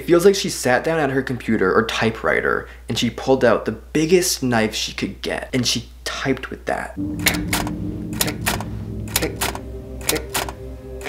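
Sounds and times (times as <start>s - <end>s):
steady low drone: 7.0s - 11.0s.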